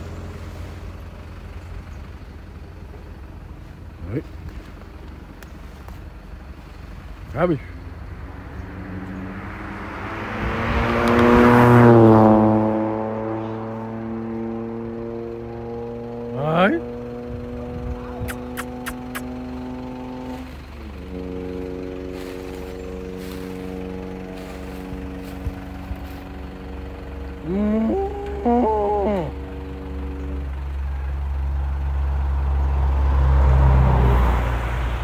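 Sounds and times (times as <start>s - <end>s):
vehicle engine passing: 0.0s - 35.0s
sharp clicks: 18.3s - 19.3s.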